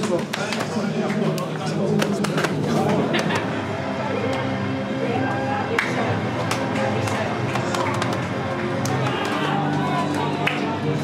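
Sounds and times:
sharp taps and slaps: 0.0 - 2.6, 5.8 - 9.4
people chattering: 0.0 - 11.0.

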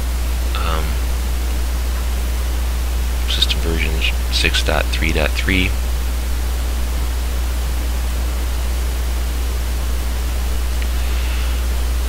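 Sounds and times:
low electrical hum: 0.0 - 12.0
recording hiss: 3.0 - 6.2.

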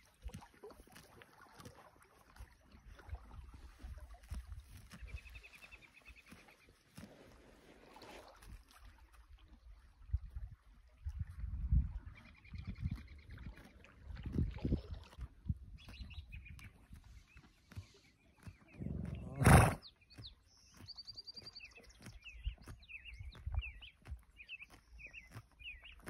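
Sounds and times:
horse chewing grass: 0.0 - 9.8, 10.4 - 26.0
songbirds chirping: 1.4 - 7.5, 12.0 - 26.0
horse snorting: 18.7 - 19.9.

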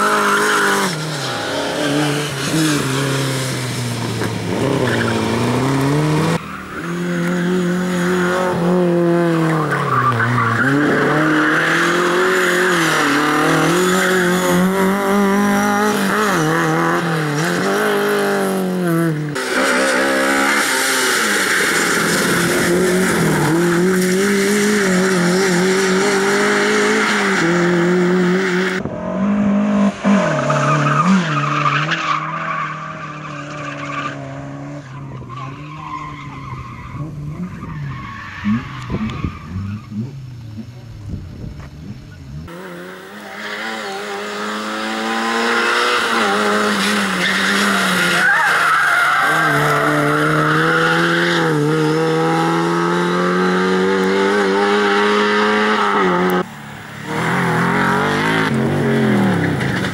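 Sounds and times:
tyres skidding on gravel: 0.0 - 28.8, 30.0 - 59.9
rally car engine revving: 0.0 - 59.9.

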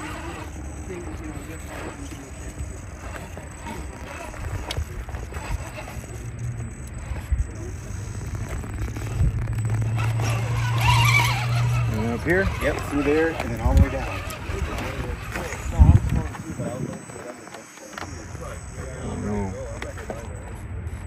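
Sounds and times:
electric motor humming: 0.0 - 20.3.

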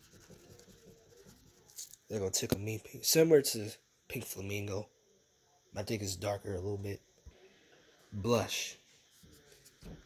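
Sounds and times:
crayon scratching on paper: 0.0 - 1.9.

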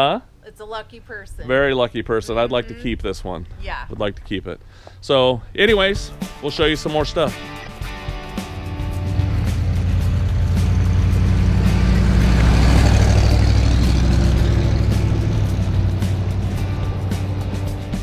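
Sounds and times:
truck engine driving past: 7.5 - 18.0.

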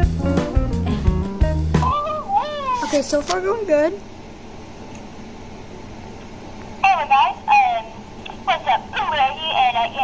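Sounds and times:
background music with beat: 0.0 - 1.9
high-pitched sliding cry: 1.8 - 3.1.

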